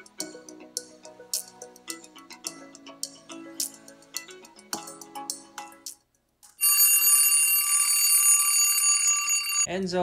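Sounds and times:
bell alarm clock ringing: 6.6 - 9.7.

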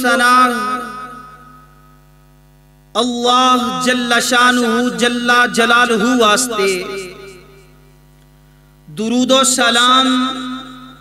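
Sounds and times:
electrical mains hum: 0.0 - 11.0
man speaking: 3.0 - 7.4, 8.9 - 10.9.

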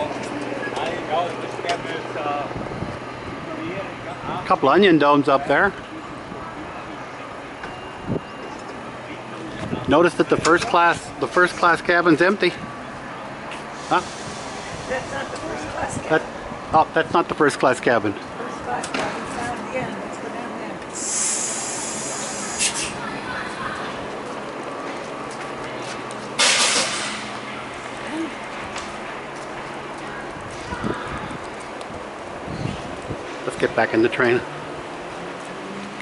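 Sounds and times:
station background hum and hiss: 0.0 - 36.0
compressed air hissing: 13.7 - 15.3, 20.9 - 23.1.

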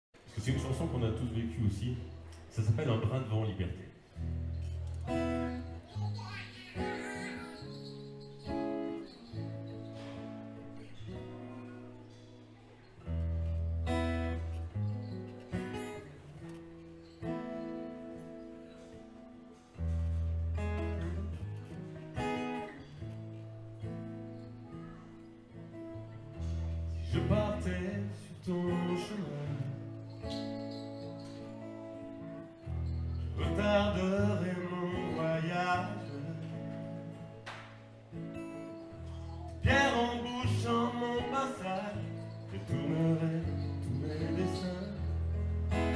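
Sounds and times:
acoustic guitar chords: 0.2 - 45.9
man singing: 27.0 - 29.9, 33.4 - 36.8, 39.6 - 45.9.

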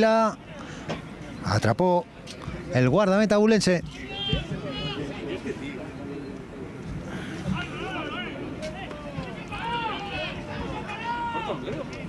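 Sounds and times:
outdoor background noise: 0.0 - 12.0
footballers shouting: 3.9 - 6.0, 7.1 - 12.0.

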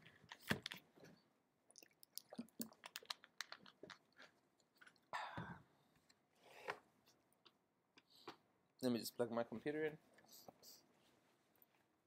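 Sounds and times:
objects being handled: 0.0 - 5.1.

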